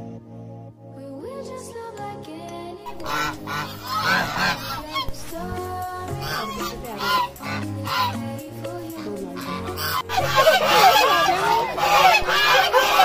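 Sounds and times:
geese honking: 2.9 - 13.0.

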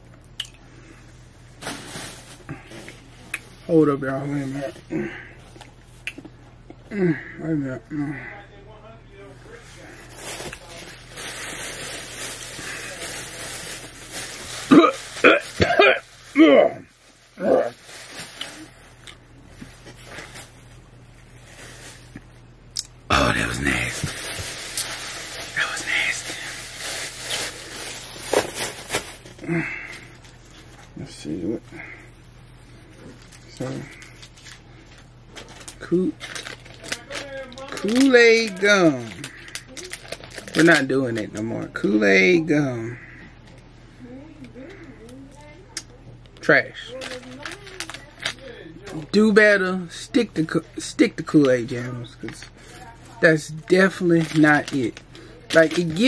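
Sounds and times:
plastic bag rustling: 1.5 - 4.8, 9.5 - 22.3, 23.1 - 31.3, 32.1 - 41.9, 46.8 - 56.0.

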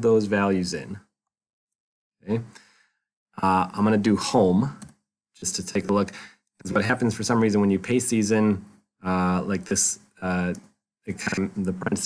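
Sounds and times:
man speaking: 0.0 - 1.0, 2.3 - 2.6, 3.4 - 4.8, 5.4 - 12.0
exhaled breath: 2.5 - 3.0.

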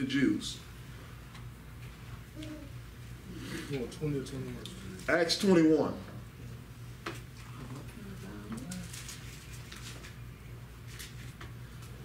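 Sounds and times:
low electrical hum: 0.0 - 12.0
thin pages rustling: 8.6 - 10.2.

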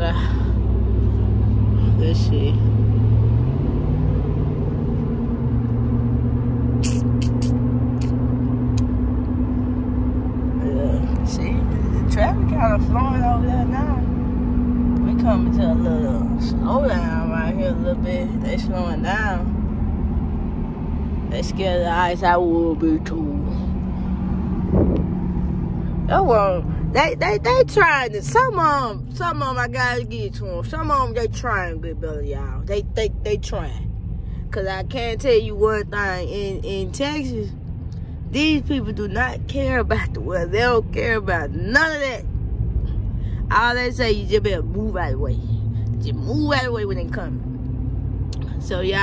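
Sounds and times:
road and engine drone: 0.0 - 49.0.

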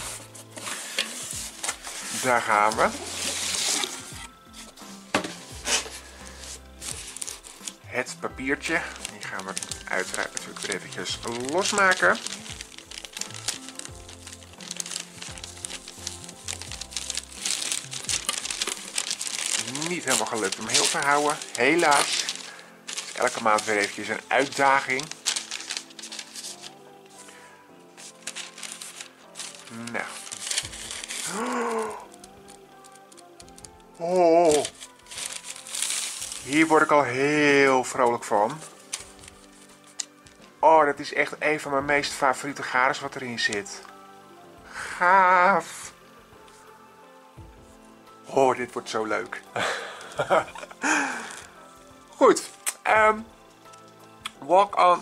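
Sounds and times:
cardboard box rustling and scraping: 0.0 - 6.0
tissue paper rustling: 0.0 - 40.4, 48.5 - 53.9
faint background music: 0.0 - 55.0
wordless ooh vocal: 29.6 - 35.1.

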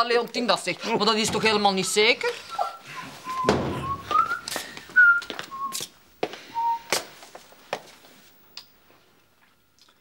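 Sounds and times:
person whistling a tune: 2.5 - 5.9, 6.5 - 7.0
dull thump: 3.4 - 4.2.

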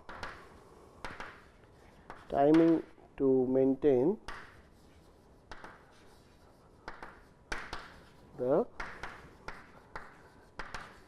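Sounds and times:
chalk writing on chalkboard: 0.1 - 3.0, 3.7 - 11.0.

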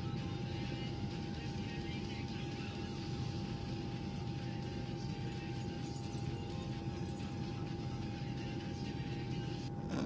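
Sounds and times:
thin steady whine: 0.0 - 10.0.

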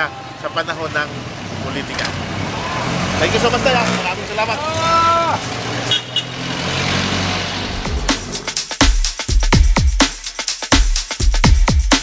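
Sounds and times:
street traffic: 0.0 - 8.8
electronic dance music: 7.6 - 12.0.

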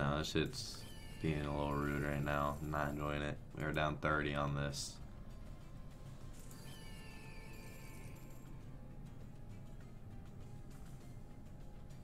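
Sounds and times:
slot game music: 0.0 - 12.0.

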